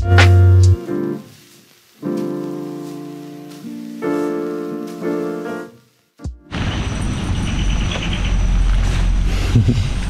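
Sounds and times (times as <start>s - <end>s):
low rumbling noise: 6.5s - 10.0s.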